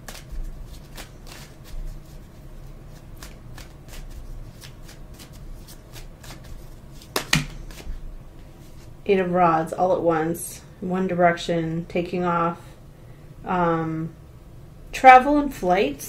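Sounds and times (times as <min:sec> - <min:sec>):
cards being shuffled: 0:00.0 - 0:08.9
sharp card snap: 0:03.2 - 0:07.9.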